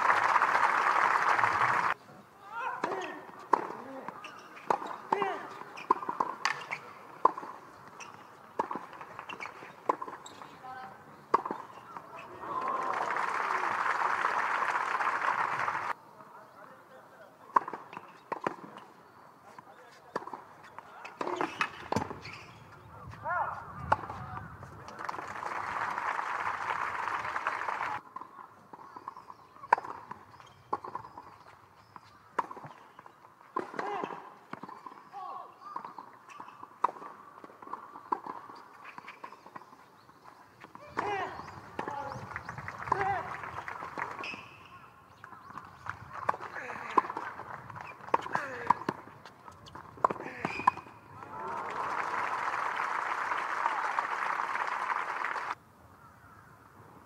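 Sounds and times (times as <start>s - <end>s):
crowd applauding: 0.0s - 2.0s, 12.4s - 16.0s, 25.0s - 28.0s, 51.3s - 55.6s
tennis ball bouncing: 2.8s - 12.3s, 17.5s - 18.8s, 20.1s - 20.5s, 28.0s - 35.1s, 35.7s - 39.8s, 40.6s - 44.5s, 45.2s - 50.9s
racket striking tennis ball: 4.6s - 10.2s.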